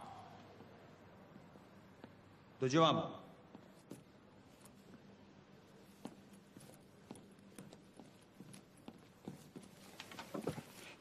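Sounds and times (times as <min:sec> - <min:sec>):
footsteps on hard floor: 0:05.9 - 0:11.0.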